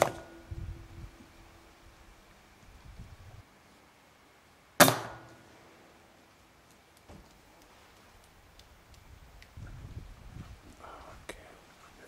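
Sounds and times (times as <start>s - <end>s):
air rifle shot: 4.8s - 5.4s.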